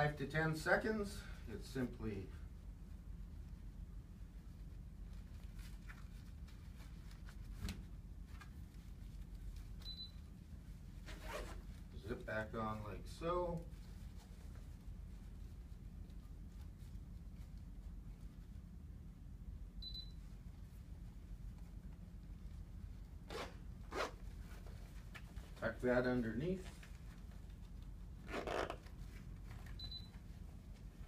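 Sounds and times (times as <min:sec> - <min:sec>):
zipper zipping: 0:11.0 - 0:11.7, 0:23.2 - 0:24.3, 0:28.2 - 0:28.9.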